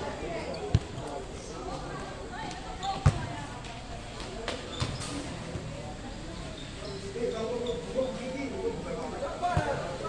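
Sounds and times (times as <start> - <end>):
ball bouncing on concrete: 3.0 - 3.3.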